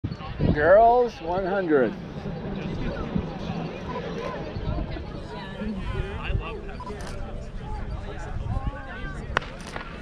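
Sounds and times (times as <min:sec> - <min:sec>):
outdoor background noise: 0:00.0 - 0:10.0
distant voices: 0:00.1 - 0:10.0.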